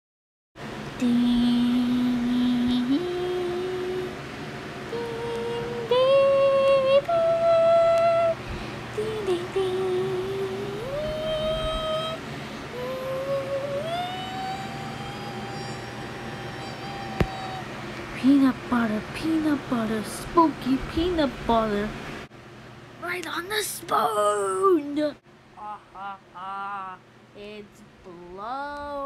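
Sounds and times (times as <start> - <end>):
person humming a slow tune: 0.9 - 17.8, 25.6 - 27.1.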